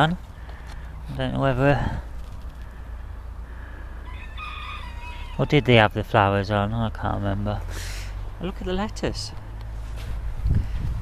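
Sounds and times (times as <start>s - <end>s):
rooster crowing: 4.0s - 5.9s.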